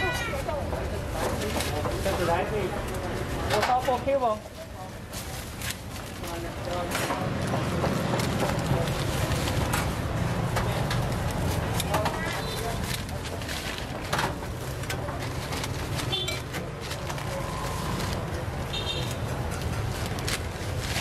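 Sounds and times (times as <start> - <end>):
low rumble of traffic: 0.0 - 21.0.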